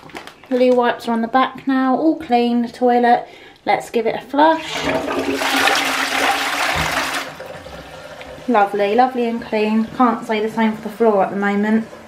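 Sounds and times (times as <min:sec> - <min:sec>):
toilet flushing: 0:04.4 - 0:12.0.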